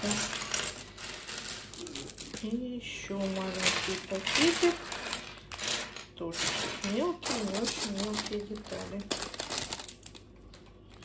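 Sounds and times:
plastic bricks clattering: 0.0s - 11.0s.

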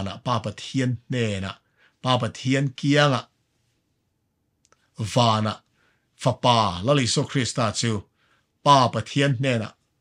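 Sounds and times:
man speaking: 0.0s - 3.4s, 4.9s - 9.8s.

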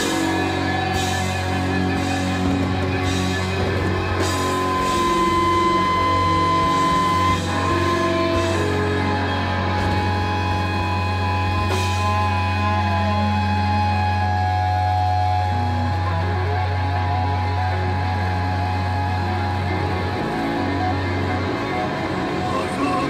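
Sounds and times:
low drone: 0.0s - 23.0s
metal band playing: 0.0s - 23.0s
sustained guitar tones: 0.0s - 23.0s.

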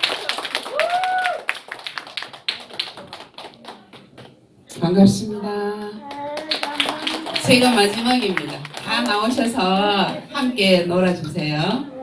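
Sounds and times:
audience clapping: 0.0s - 4.4s, 5.8s - 10.2s.

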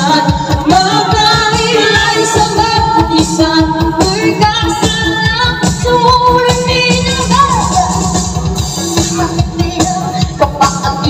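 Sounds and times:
amplified backing music with beat: 0.0s - 11.0s
woman singing into a microphone: 0.0s - 11.0s.

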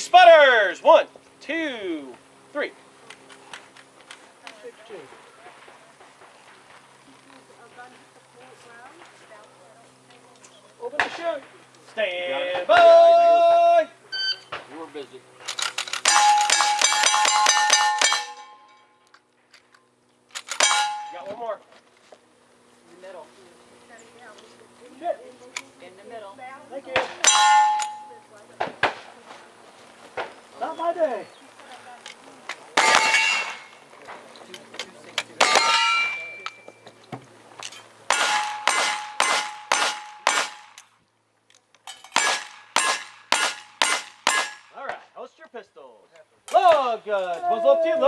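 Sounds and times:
low steady hum: 0.0s - 48.0s
faint distant voices: 2.0s - 13.3s, 22.7s - 38.1s
steel target clanging and ringing: 15.5s - 19.0s, 20.4s - 21.6s, 27.0s - 28.3s, 32.8s - 33.8s, 35.3s - 36.8s, 37.6s - 40.8s, 41.9s - 44.8s
rifle shot: 38.1s - 40.8s, 42.2s - 44.6s.

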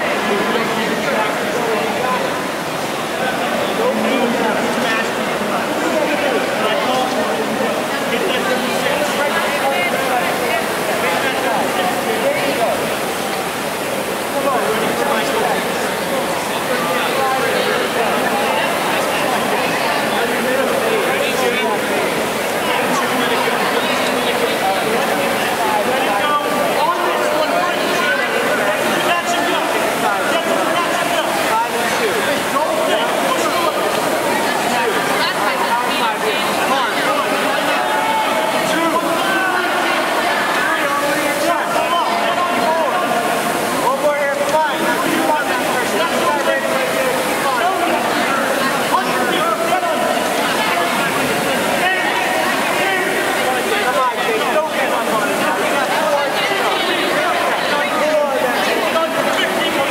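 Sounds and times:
crowd shouting and cheering: 0.0s - 59.9s.

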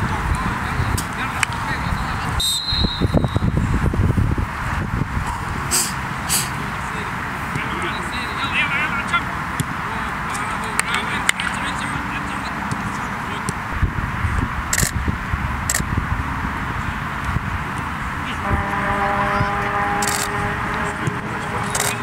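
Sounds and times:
players calling out: 5.2s - 13.8s, 16.2s - 22.0s.

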